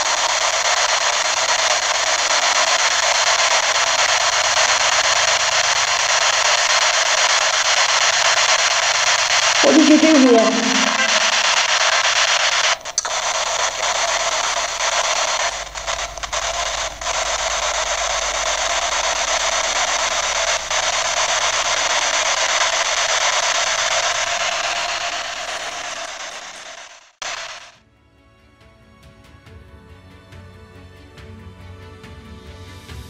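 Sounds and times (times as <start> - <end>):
radio static hiss: 0.0 - 27.7.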